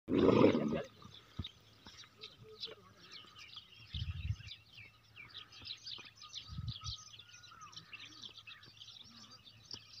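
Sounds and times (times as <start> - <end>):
small birds chirping: 0.2 - 10.0.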